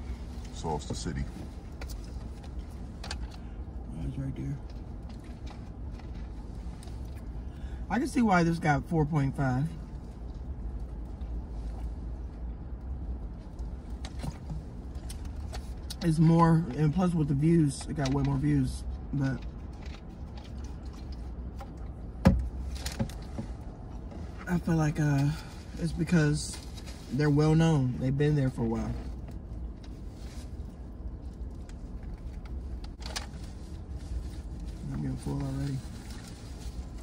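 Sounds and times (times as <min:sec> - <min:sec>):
low rumble in car cabin: 0:00.0 - 0:37.0.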